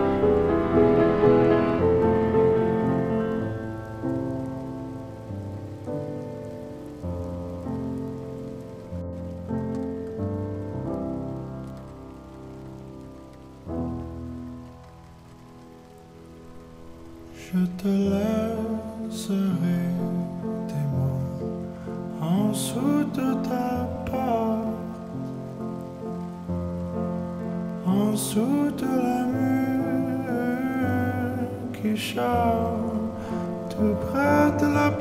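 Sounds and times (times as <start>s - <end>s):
rain pattering: 0.0s - 35.0s
slow piano chords: 0.0s - 35.0s.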